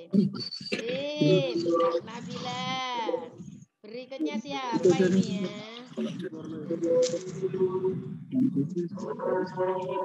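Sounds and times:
person's sing-song voice: 0.0s - 3.2s.

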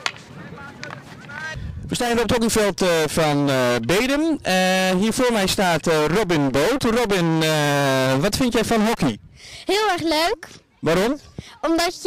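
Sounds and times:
hockey stick striking ball: 0.0s - 1.4s.

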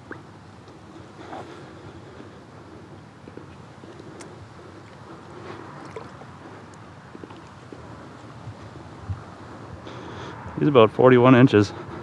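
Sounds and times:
water lapping against a kayak: 0.0s - 10.2s.

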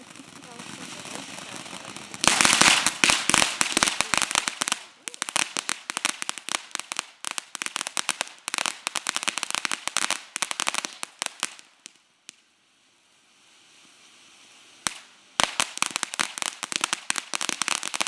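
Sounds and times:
firework crackling: 0.0s - 18.0s
firework hissing: 0.0s - 18.0s.

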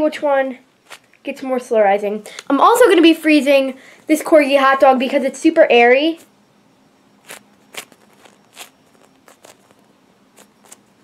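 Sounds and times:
hands rustling foam toy: 0.8s - 1.2s, 7.2s - 11.0s.

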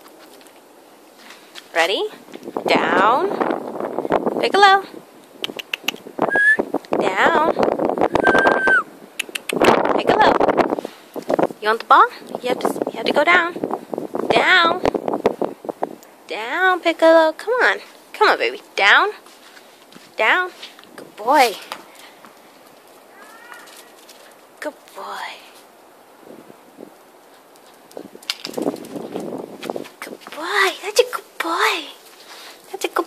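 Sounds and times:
faint outdoor background noise: 0.0s - 33.0s
faint pitched call: 23.1s - 23.8s
small dog whining: 23.1s - 23.9s
clicks and rustling: 27.4s - 30.4s.

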